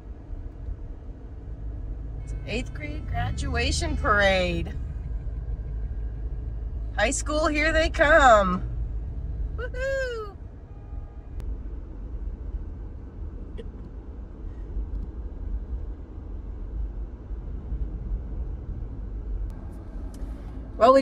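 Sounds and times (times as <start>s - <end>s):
road and engine rumble in car: 0.0s - 21.0s.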